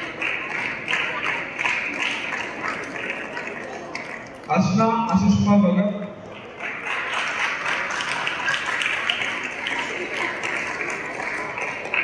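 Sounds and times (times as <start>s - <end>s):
audience applauding: 0.0s - 4.5s, 6.3s - 12.0s.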